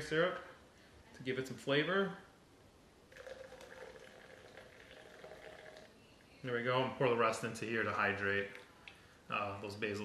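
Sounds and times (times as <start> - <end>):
syrup trickling into cup: 3.1 - 6.0.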